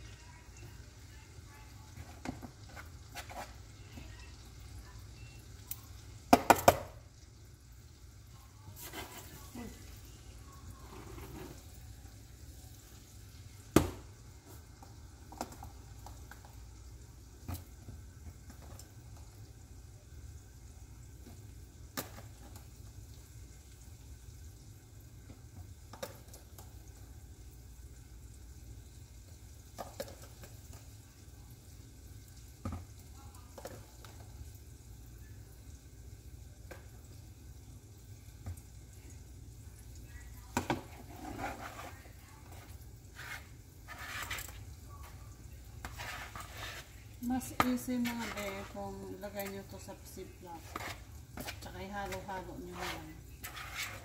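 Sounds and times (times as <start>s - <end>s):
knocks and scrapes in bowl: 40.6s - 44.6s, 45.8s - 48.8s, 50.6s - 54.0s.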